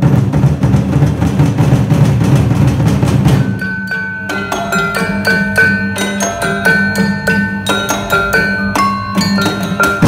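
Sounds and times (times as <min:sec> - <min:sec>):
barrel drums rolling: 0:00.0 - 0:10.0.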